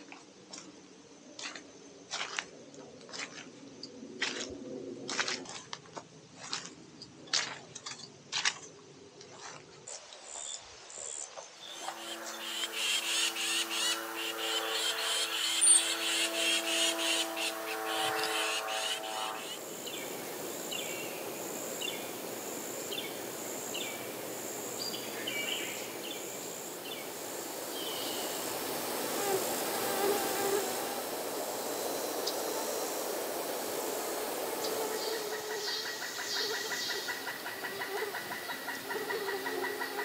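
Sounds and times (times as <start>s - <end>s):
high pulsing insect call: 0.0s - 40.0s
short insect chirps: 9.4s - 37.4s
loud pulsing rasping insect call: 10.2s - 40.0s.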